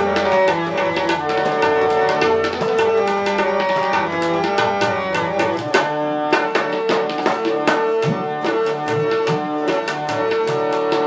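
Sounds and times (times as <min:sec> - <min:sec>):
harmonium melody: 0:00.0 - 0:11.0
tabla rhythm: 0:00.0 - 0:11.0.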